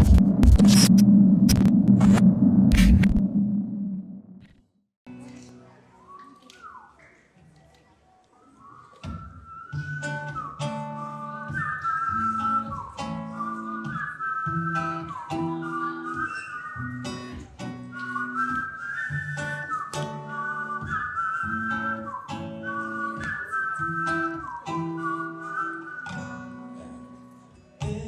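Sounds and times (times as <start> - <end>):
whistled melody: 6.0 - 7.2, 8.4 - 27.0.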